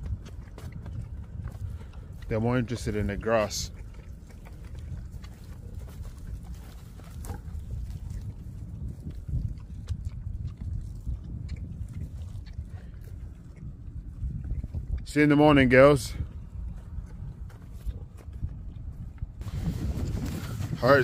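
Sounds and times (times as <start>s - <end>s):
grass tearing and chewing: 0.0s - 15.0s, 16.2s - 21.0s
steady low rumble: 0.0s - 21.0s.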